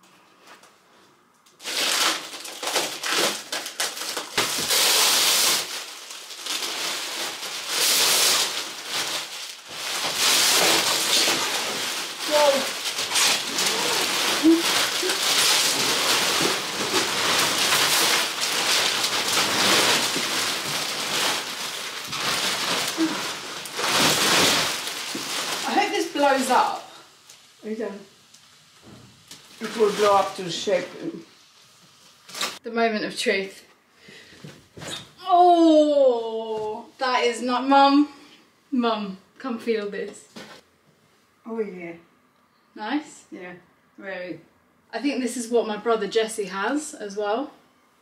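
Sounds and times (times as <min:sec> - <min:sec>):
plastic wrapping crinkling: 0:01.5 - 0:32.6.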